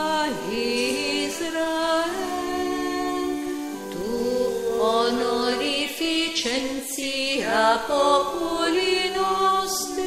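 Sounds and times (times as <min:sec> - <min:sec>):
voices singing a chant: 0:00.0 - 0:10.0.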